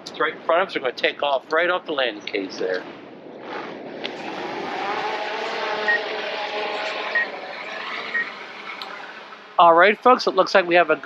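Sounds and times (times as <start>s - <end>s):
drone propellers buzzing: 2.4s - 9.6s.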